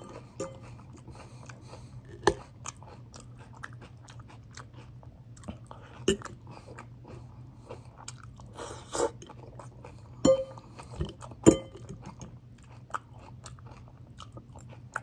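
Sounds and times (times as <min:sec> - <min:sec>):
person chewing crunchy salad: 0:00.0 - 0:15.0
steady low hum: 0:00.0 - 0:15.0.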